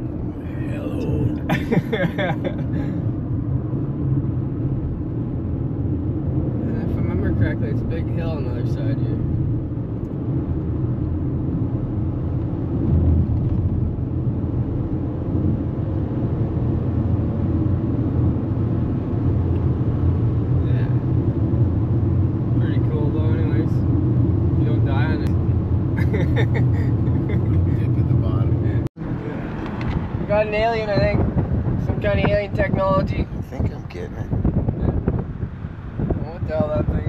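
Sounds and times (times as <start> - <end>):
car engine noise: 0.0 - 37.0
tyres rumbling on highway: 0.0 - 37.0.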